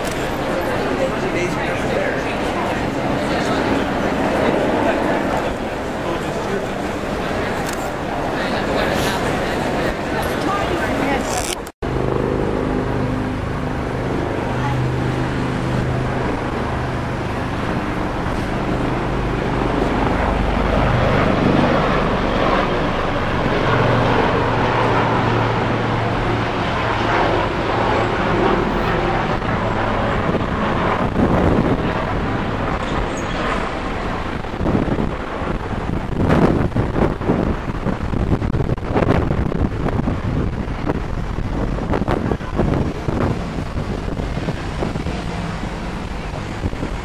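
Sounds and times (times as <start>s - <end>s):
people talking: 0.0s - 11.7s, 13.8s - 15.8s
city traffic engine hum: 0.0s - 47.0s.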